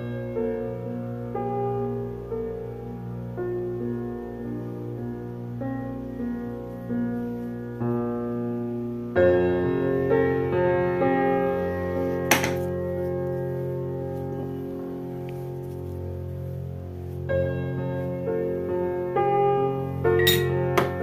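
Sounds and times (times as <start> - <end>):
slow piano chords: 0.0 - 21.0.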